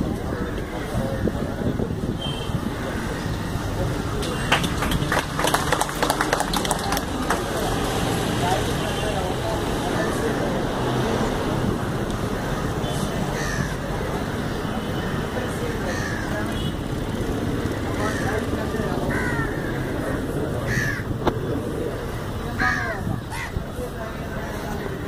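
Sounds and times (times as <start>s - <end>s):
steady background noise: 0.0s - 25.0s
crows cawing: 13.3s - 13.9s, 15.8s - 16.6s, 17.9s - 21.1s, 22.6s - 23.6s.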